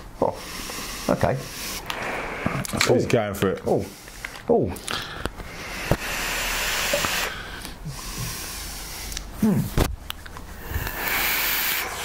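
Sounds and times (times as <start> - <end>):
breathy vaping hiss: 0.2 - 2.7, 3.8 - 9.3, 10.6 - 12.0.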